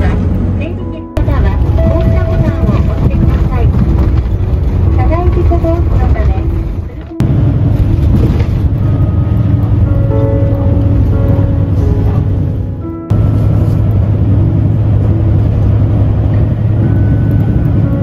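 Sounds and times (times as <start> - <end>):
engine and road noise rumble: 0.0 - 18.0.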